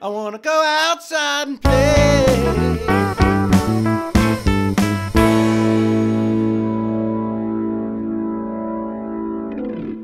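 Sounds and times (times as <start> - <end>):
electric guitar chord ringing: 2.5 - 10.0.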